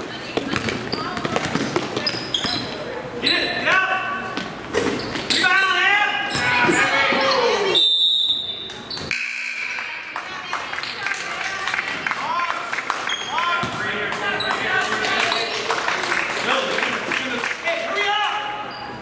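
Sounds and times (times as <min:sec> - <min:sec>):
sneaker squeaks: 0:00.1 - 0:09.4, 0:13.0 - 0:15.6, 0:18.4 - 0:19.0
basketball bouncing on hardwood: 0:00.4 - 0:02.5
referee's whistle: 0:07.7 - 0:09.8.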